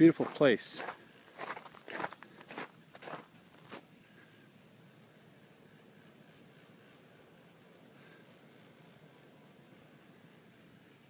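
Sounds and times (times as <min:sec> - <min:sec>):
footsteps of person walking: 0:00.1 - 0:03.8.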